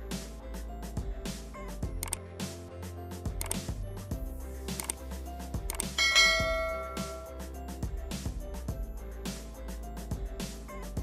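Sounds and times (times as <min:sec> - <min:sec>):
background music: 0:00.0 - 0:11.0
bright bell chime: 0:06.0 - 0:07.4.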